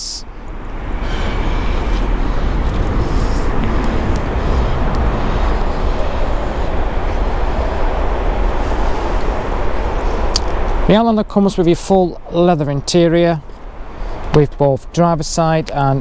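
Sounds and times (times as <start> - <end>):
wind buffeting microphone: 0.2 - 16.0.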